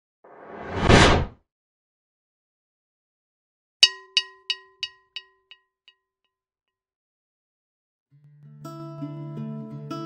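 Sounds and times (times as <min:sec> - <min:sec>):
whoosh sound effect: 0:00.3 - 0:01.3.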